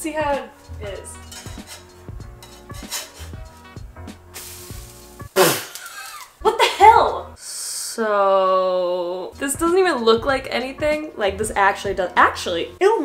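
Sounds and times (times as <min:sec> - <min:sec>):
faint background music: 0:00.0 - 0:05.7, 0:06.3 - 0:13.0
metal spatula scraping: 0:00.4 - 0:06.3
pancake sizzling on griddle: 0:04.3 - 0:06.3.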